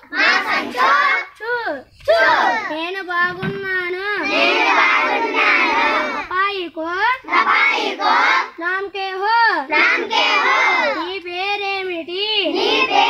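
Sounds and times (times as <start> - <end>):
children singing in unison: 0.0 - 1.3, 2.1 - 2.7, 4.2 - 6.3, 7.2 - 8.6, 9.7 - 11.1, 12.5 - 13.0.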